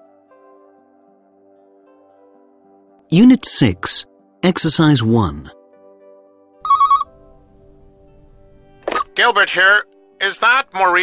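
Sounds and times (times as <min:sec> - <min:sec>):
soft background music: 0:00.0 - 0:11.0
electronic telephone ring: 0:06.6 - 0:07.5.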